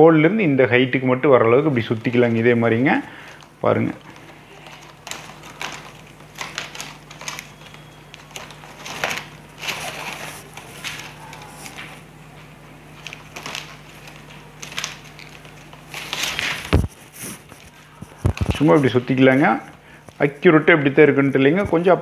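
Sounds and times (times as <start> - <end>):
plastic strips rustling: 0.8 - 22.0.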